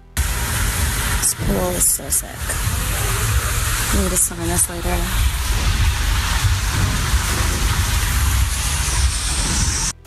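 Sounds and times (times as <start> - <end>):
water rushing over microphone: 0.1 - 10.0.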